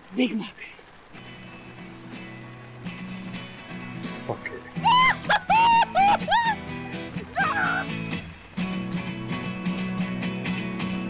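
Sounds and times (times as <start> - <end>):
background music: 0.2 - 11.0
woman yelping like a dog: 4.8 - 6.6, 7.3 - 7.9.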